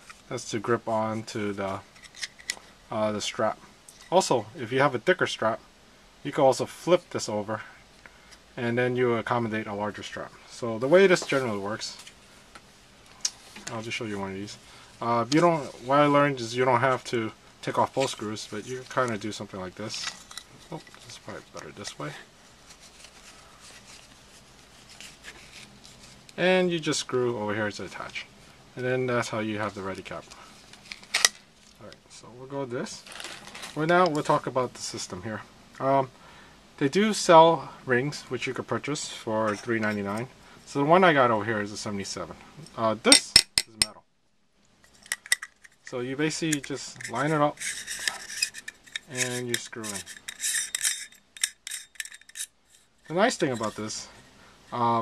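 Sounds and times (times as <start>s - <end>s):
threads scraping while screwing: 17.7s - 26.4s, 44.8s - 54.8s
soft rubbing on camera strap: 21.9s - 26.4s, 46.7s - 50.8s.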